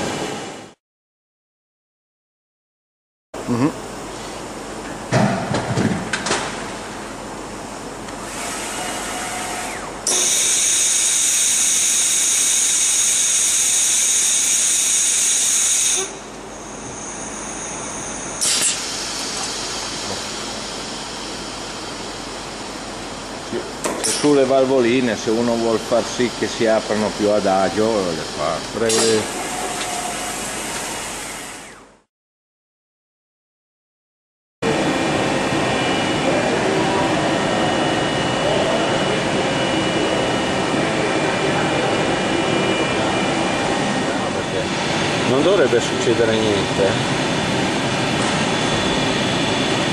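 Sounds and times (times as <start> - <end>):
lathe machine hissing: 8.2 - 31.8.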